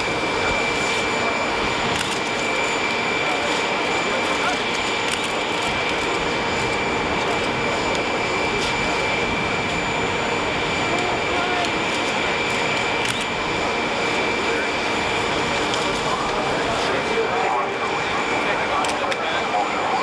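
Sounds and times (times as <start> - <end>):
jet engine rushing noise: 0.0 - 20.0
jet turbine high whine: 0.0 - 20.0.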